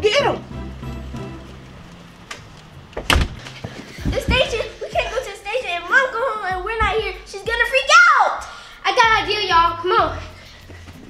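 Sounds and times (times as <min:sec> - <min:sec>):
front door shutting with thud: 0:02.2 - 0:04.7.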